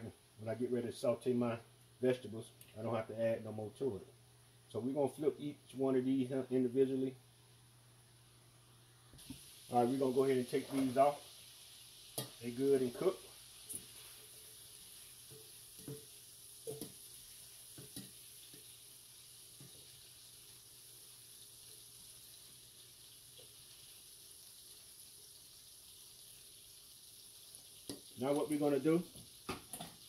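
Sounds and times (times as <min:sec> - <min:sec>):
shrimp sizzling in a skillet: 0:09.2 - 0:30.0.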